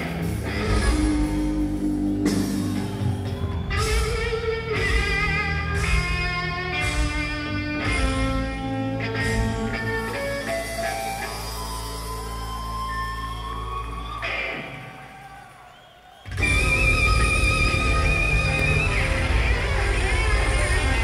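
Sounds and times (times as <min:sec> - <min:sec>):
lead electric guitar: 0:00.0 - 0:15.0, 0:16.3 - 0:21.0
live instrumental rock band: 0:00.0 - 0:15.2, 0:16.3 - 0:21.0.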